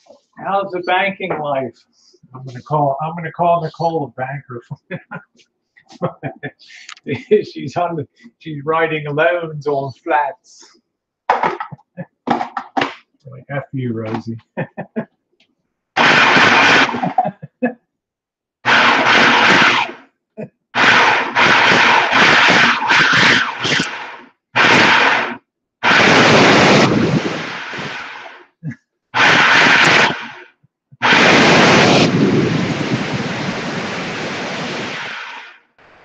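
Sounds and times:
blender motor pulsing: 0:16.0 - 0:17.1, 0:18.7 - 0:20.0, 0:20.8 - 0:28.4, 0:29.2 - 0:30.4, 0:31.0 - 0:32.2.

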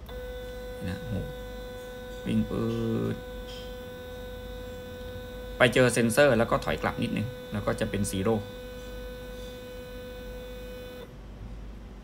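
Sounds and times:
stepper motor humming: 0:00.0 - 0:11.1.

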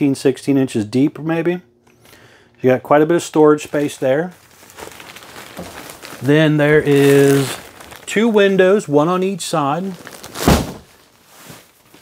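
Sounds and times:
dull thump: 0:10.4 - 0:10.9.

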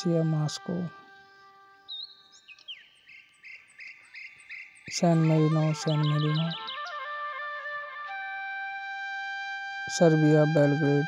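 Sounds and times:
faint background music: 0:00.0 - 0:02.1, 0:04.8 - 0:11.0.

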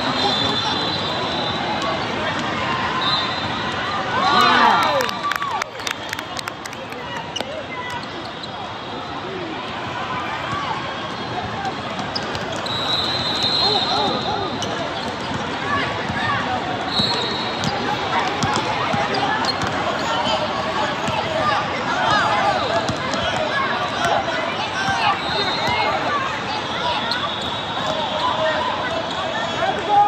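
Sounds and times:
voices in a big hall: 0:00.0 - 0:30.0
sneakers squeaking: 0:11.1 - 0:16.2, 0:16.8 - 0:21.3, 0:22.8 - 0:29.6.

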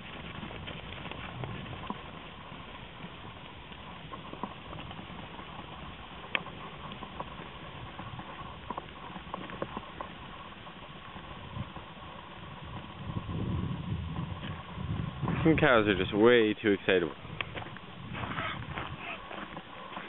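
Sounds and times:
cattle hooves thudding: 0:00.0 - 0:20.0.

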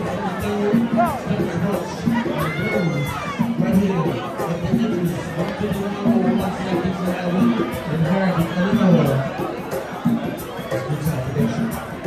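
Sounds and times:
crowd shouting and cheering: 0:00.0 - 0:12.0
dance music with beat and bass: 0:00.0 - 0:12.0.

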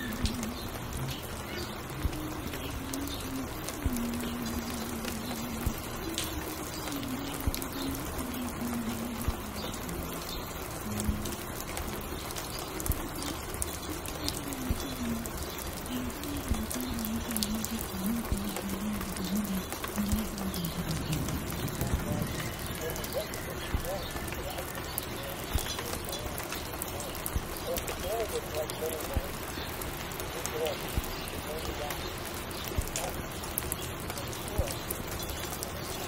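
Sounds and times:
muffled low melody: 0:00.0 - 0:33.1
small clicks and crackles: 0:00.0 - 0:36.0
steady rain hiss: 0:00.0 - 0:36.0.

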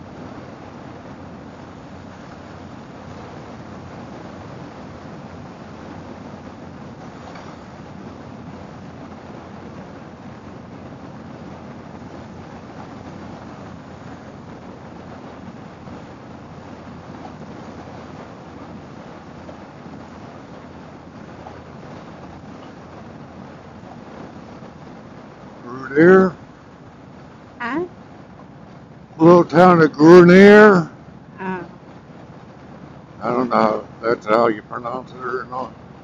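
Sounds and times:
wind rushing over microphone: 0:00.0 - 0:36.0.

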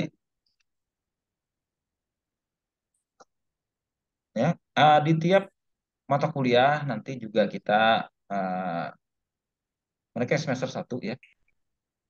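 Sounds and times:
man speaking: 0:04.3 - 0:09.0, 0:10.2 - 0:11.4.

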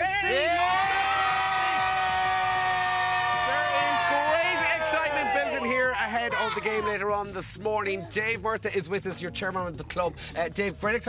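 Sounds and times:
children cheering and screaming: 0:00.0 - 0:07.1.

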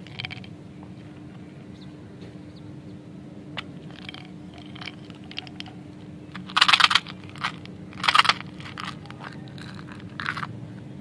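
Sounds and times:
hard candy balls rattling: 0:00.0 - 0:00.5, 0:03.7 - 0:10.6.

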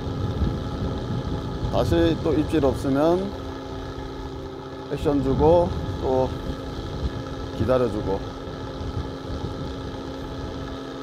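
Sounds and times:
boat motor running: 0:00.0 - 0:11.0.

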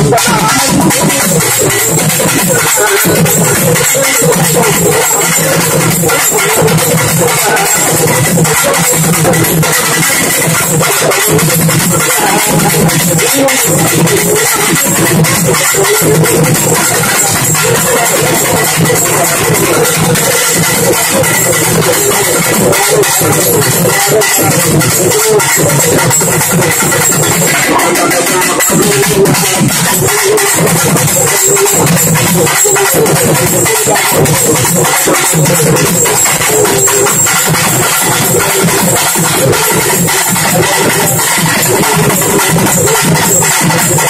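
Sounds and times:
fast drum ensemble: 0:00.0 - 0:44.0.

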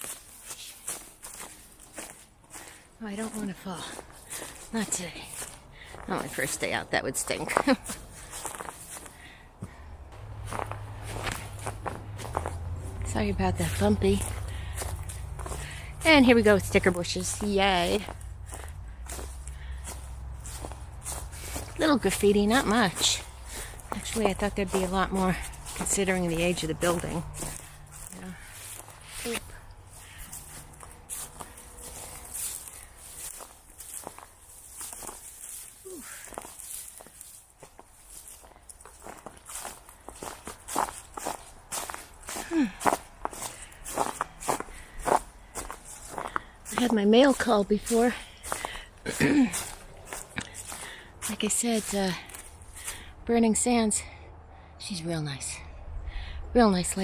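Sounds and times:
footsteps through dry leaves: 0:00.0 - 0:09.3, 0:10.2 - 0:53.2.

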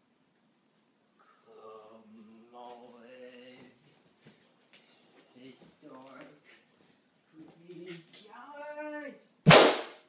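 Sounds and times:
held vocal sound: 0:01.2 - 0:03.8
balloon pop: 0:09.5 - 0:10.0.

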